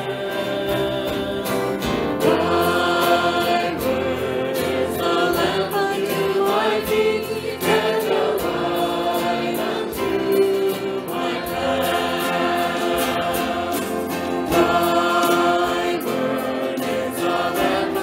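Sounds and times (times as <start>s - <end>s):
band playing: 0.0s - 18.0s
voices singing together: 0.0s - 18.0s.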